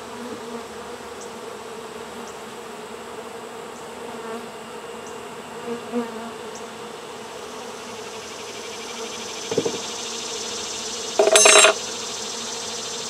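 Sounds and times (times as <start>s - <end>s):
faint knock: 9.5s - 9.8s.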